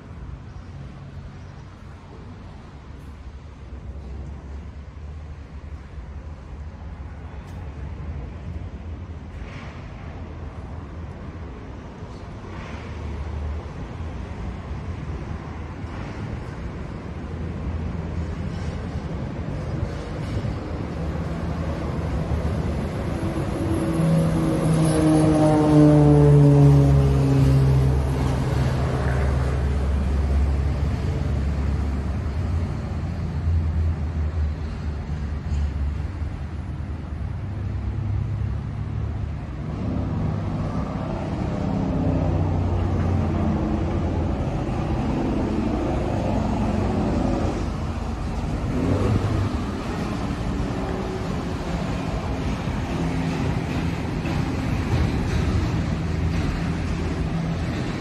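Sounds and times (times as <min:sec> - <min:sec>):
low rumble of traffic: 0:00.0 - 0:58.0
vehicle passing by: 0:21.3 - 0:36.0, 0:36.6 - 0:58.0.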